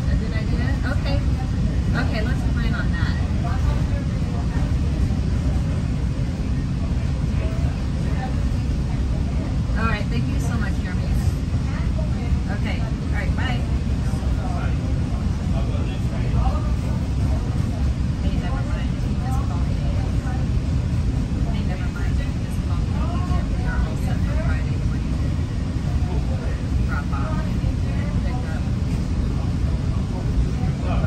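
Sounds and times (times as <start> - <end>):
people talking faintly: 0.0 - 31.0
train rumble inside coach: 0.0 - 31.0.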